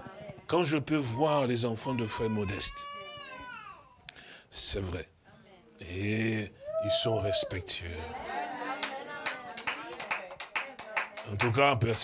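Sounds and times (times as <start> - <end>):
faint voices: 5.3 - 11.6
hand claps: 8.8 - 12.0.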